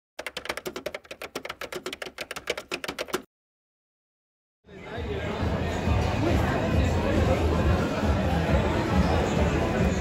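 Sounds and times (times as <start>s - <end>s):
rapid keyboard key clicks: 0.2s - 3.3s.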